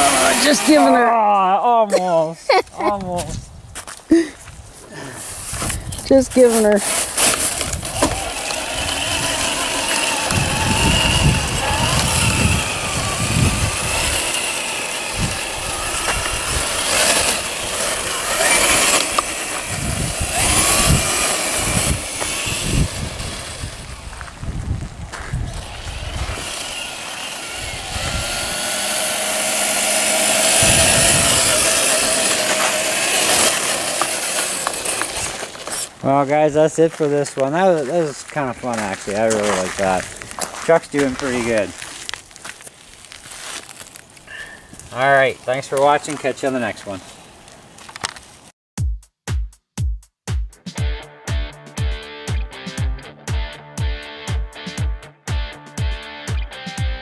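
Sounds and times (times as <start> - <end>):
electric motor and gearbox whining: 0.0 - 1.5, 5.6 - 47.0
wind gusts on microphone: 2.9 - 6.6, 7.5 - 26.9, 27.5 - 28.9, 30.4 - 33.2.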